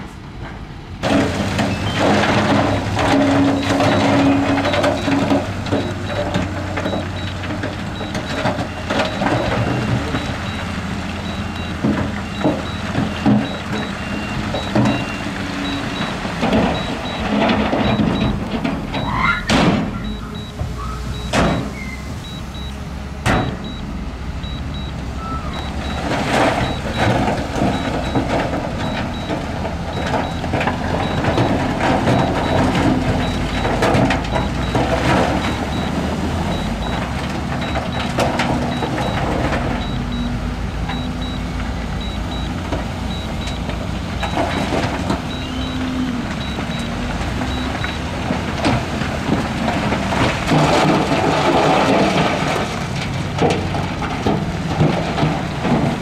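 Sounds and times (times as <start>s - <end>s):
diesel machinery running: 0.0s - 56.0s
reversing alarm beeps: 3.4s - 7.4s, 8.0s - 18.4s, 19.0s - 19.4s, 20.0s - 44.7s, 45.3s - 48.1s
rock clattering off truck bed: 48.2s - 56.0s.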